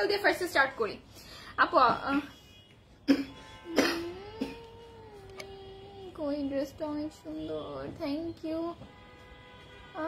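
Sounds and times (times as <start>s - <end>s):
woman coughing: 3.1s - 4.7s
woman humming: 3.7s - 6.6s.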